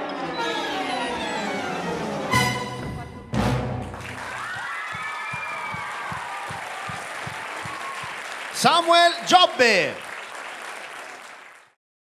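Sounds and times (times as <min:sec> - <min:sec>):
audience applauding: 0:03.8 - 0:11.8.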